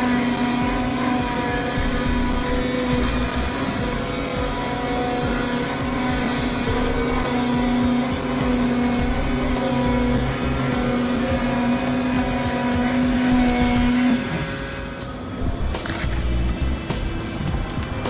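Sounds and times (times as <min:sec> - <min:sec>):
cutting plotter humming with whine: 0:00.0 - 0:18.0.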